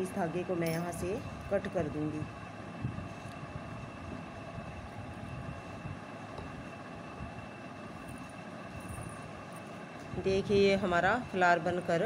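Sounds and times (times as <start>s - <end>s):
background hum: 0.0s - 12.0s.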